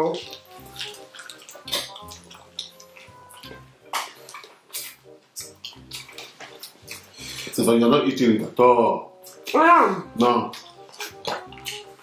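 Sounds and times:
chewing and lip-smacking: 0:00.0 - 0:07.6, 0:10.5 - 0:12.0
faint background music: 0:00.0 - 0:12.0.

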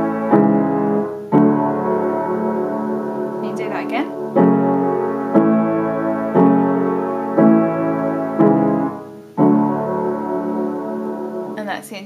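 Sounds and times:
piano playing slow block chords: 0:00.0 - 0:11.8.

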